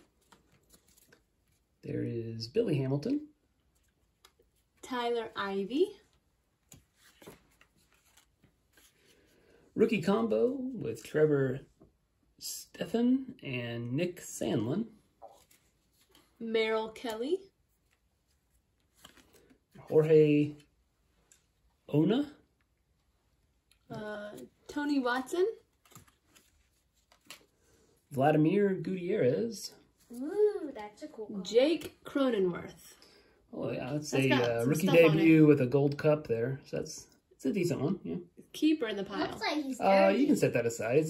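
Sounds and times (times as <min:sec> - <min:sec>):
cards rustling: 0:00.0 - 0:01.8, 0:06.1 - 0:09.4, 0:15.2 - 0:16.4, 0:17.0 - 0:21.6, 0:23.6 - 0:28.0.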